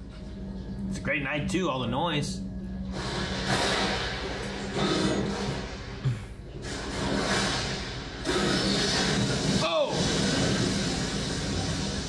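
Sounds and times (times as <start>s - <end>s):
film music: 0.0s - 12.0s.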